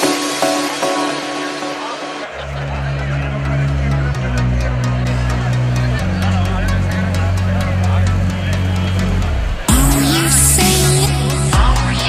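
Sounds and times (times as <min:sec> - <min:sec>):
deep bass line: 0:00.0 - 0:12.0
electronic dance music: 0:00.0 - 0:12.0.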